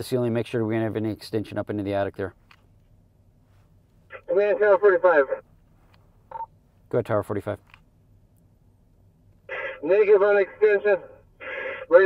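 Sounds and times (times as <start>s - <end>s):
voice over radio: 4.1s - 5.4s, 9.5s - 12.0s
radio static burst: 9.5s - 12.0s.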